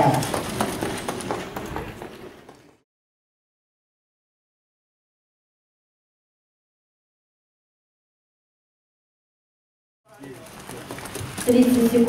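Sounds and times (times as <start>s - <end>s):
trotting horse hoofbeats: 0.0s - 2.8s, 10.1s - 12.0s.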